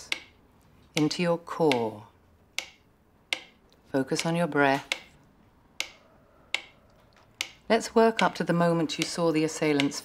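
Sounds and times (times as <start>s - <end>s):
metronome ticking: 0.0s - 10.0s.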